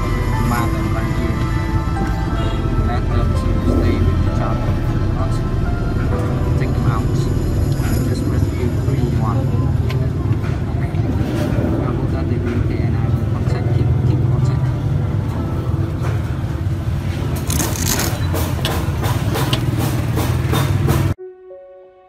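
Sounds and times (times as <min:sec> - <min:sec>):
background voices: 0:00.0 - 0:16.5
traffic hum: 0:00.0 - 0:21.2
sharp clicks and scrapes: 0:17.4 - 0:18.8.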